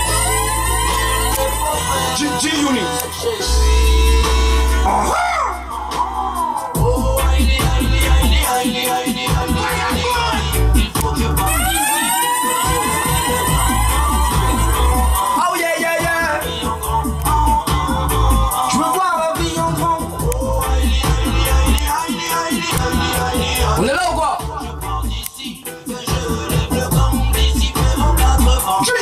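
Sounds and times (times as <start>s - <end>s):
pulsing bass line: 0.0s - 25.3s, 25.9s - 28.9s
reggae backing track: 0.0s - 29.0s
dub siren sweep: 11.2s - 15.4s.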